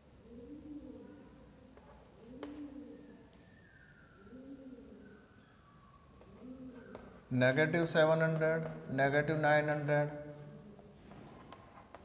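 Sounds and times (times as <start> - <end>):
pigeon cooing: 0.0 - 7.3, 10.3 - 11.0.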